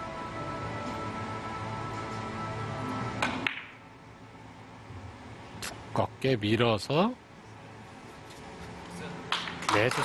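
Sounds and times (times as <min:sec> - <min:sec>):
billiard balls clacking: 0:03.2 - 0:03.8.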